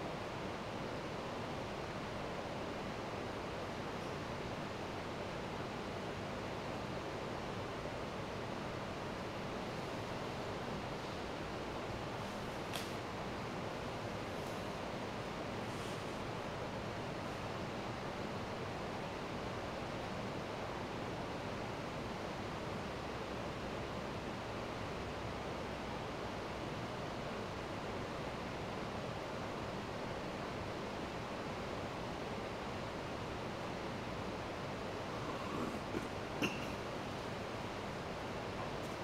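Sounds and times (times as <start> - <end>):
room background hiss: 0.0 - 39.0.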